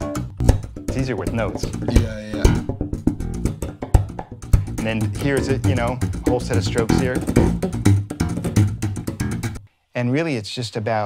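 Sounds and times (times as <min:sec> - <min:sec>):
slapped electric bass guitar: 0:00.0 - 0:09.6.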